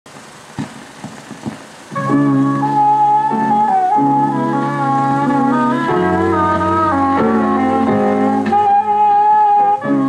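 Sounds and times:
film soundtrack hiss: 0:00.1 - 0:10.0
pops and thumps: 0:00.6 - 0:02.1
musical tone: 0:02.0 - 0:10.0.

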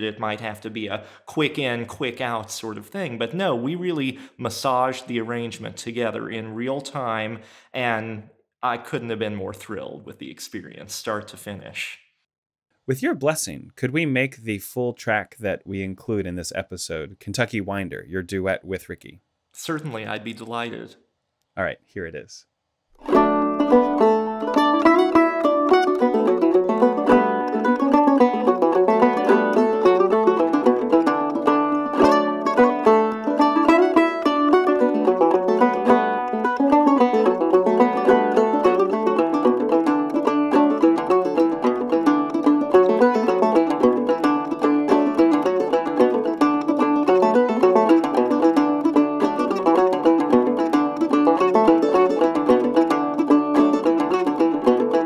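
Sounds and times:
mandolin: 0:00.0 - 0:08.0, 0:23.0 - 0:55.0
gourd banjo plucking: 0:23.0 - 0:55.0.

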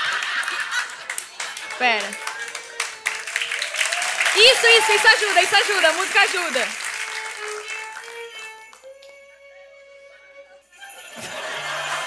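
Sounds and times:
audience applause: 0:00.0 - 0:08.8
solo violin slow melody: 0:01.6 - 0:03.4, 0:04.4 - 0:10.7.

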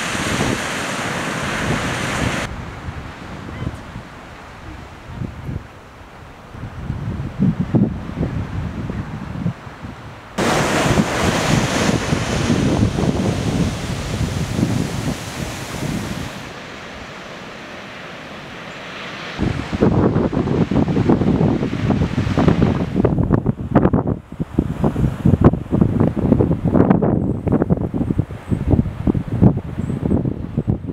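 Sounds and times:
ocean surf: 0:00.0 - 0:06.8, 0:08.0 - 0:23.6
wind buffeting microphone: 0:00.0 - 0:16.6, 0:19.4 - 0:30.9.

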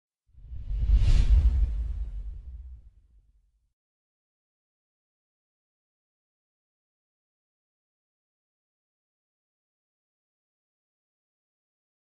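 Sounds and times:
whoosh: 0:00.4 - 0:03.0.

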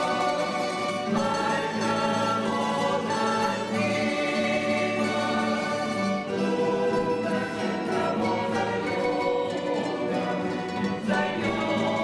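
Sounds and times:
choir singing: 0:00.0 - 0:12.0.

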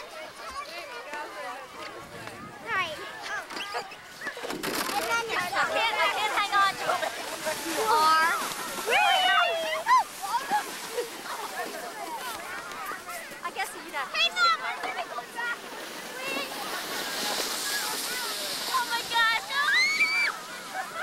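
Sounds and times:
sled sliding on snow: 0:01.9 - 0:21.0
children shrieking and calling: 0:07.7 - 0:10.9, 0:17.5 - 0:21.0.

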